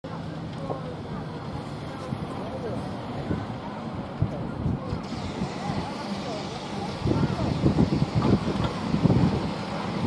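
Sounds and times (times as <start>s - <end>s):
indistinct chatter of people: 0.0s - 10.0s
wind buffeting microphone: 1.7s - 10.0s.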